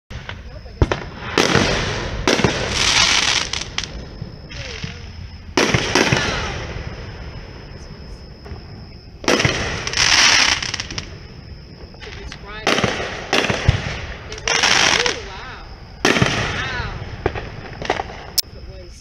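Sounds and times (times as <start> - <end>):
firework shells bursting: 0.1 - 7.7, 8.3 - 18.4
firework hissing crackle: 0.1 - 18.4.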